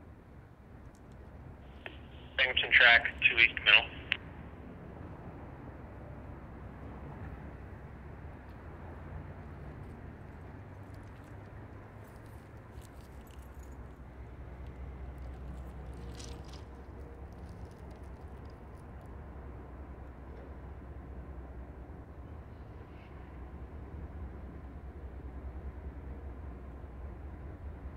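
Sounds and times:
faint clicks and jingles: 9.6 - 19.1.

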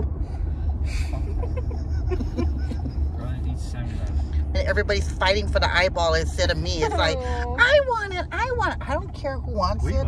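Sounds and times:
car cabin road and engine rumble: 0.0 - 10.0
people laughing: 0.9 - 3.4.

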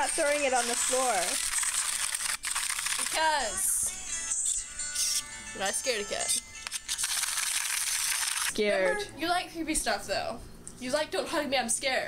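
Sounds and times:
toy robot rattling: 0.1 - 3.4, 6.7 - 8.5.

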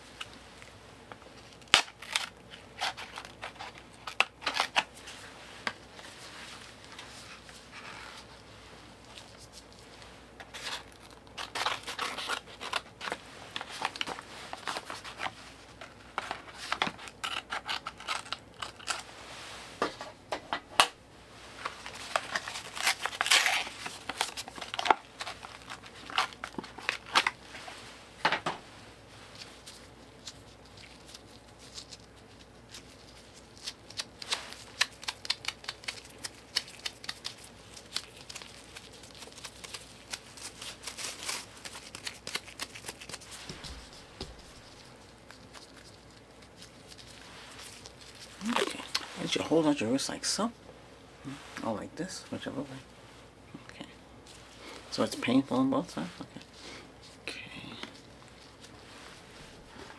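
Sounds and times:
plastic wrapping tearing: 1.5 - 4.9, 10.4 - 15.3, 21.7 - 27.4, 29.4 - 49.4
plastic wrapping crackling: 9.0 - 15.4, 21.6 - 27.6, 29.3 - 49.8.

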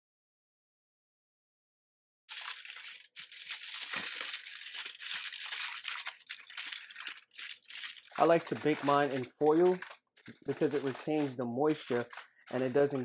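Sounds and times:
aluminum foil crinkling: 2.3 - 13.0.

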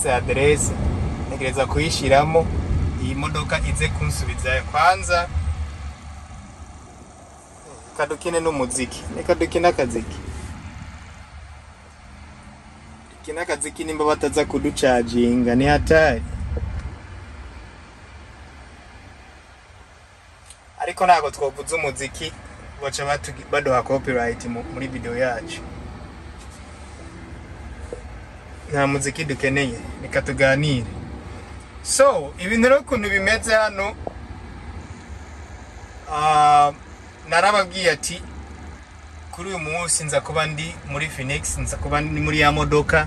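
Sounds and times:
man speaking: 0.0 - 5.4, 7.6 - 10.3, 13.2 - 16.3, 20.8 - 27.6, 28.6 - 31.0, 31.8 - 34.0, 36.1 - 38.3, 39.4 - 43.0
road and tyre rumble in car cabin: 0.0 - 43.0
faint high tone: 24.4 - 27.9.

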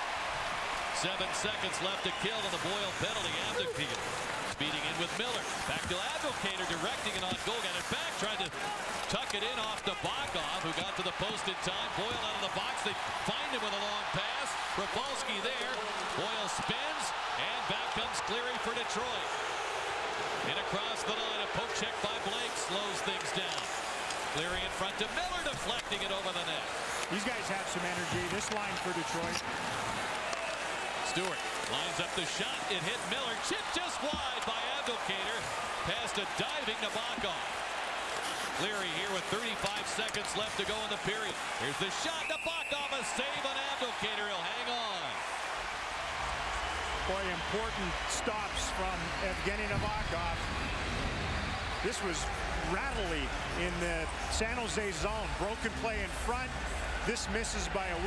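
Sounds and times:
crowd noise: 0.0 - 58.0
hockey sticks clacking on puck: 3.9 - 11.4, 22.0 - 35.5, 38.1 - 42.1.

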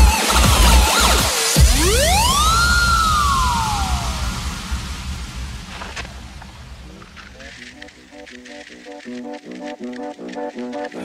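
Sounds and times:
happy hardcore dance music: 0.0 - 4.6
synth sweep: 0.0 - 8.4.

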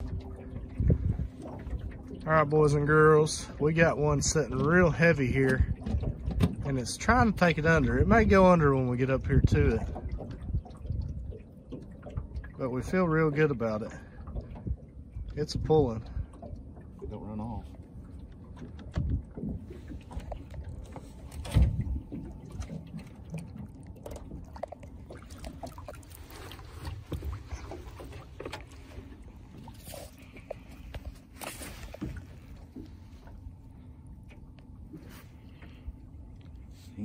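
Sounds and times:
water splashing and dripping: 0.0 - 36.7
handling rumble in a boat: 0.0 - 37.0
knocks against a boat: 5.4 - 6.7, 18.5 - 20.3, 21.3 - 23.2.

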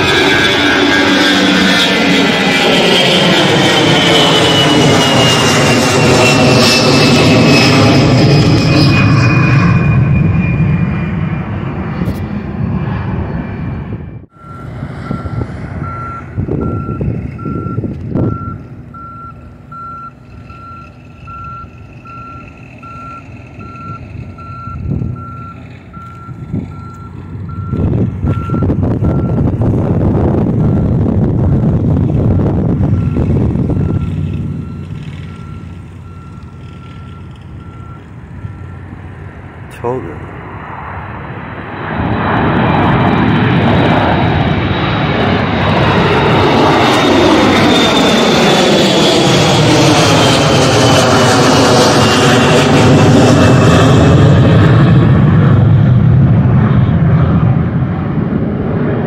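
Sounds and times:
road traffic passing: 0.0 - 6.6, 10.6 - 59.0
jet airliner roar overhead: 0.0 - 59.0
reversing alarm beeping: 14.3 - 29.5, 30.5 - 39.0.

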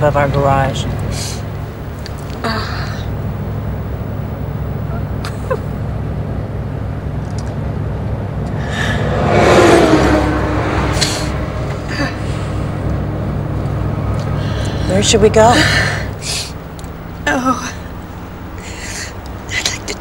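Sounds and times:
car engine and road rumble: 0.0 - 20.0
truck passing: 0.0 - 20.0.

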